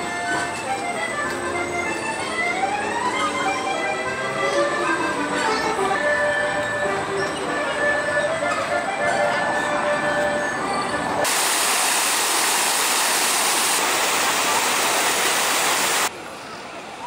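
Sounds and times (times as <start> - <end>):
carousel music: 0.0 - 11.3
fountain jets spraying water: 11.2 - 16.9.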